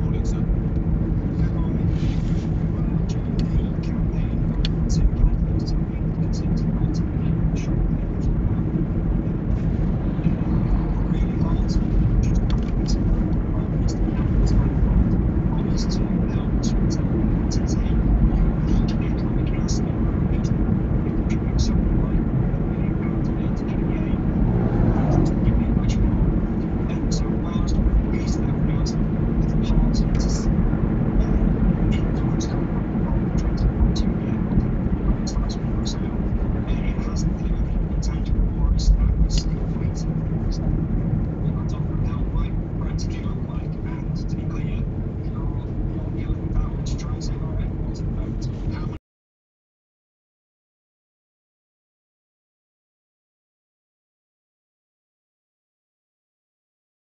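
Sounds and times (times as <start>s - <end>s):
car engine and road rumble: 0.0s - 49.0s.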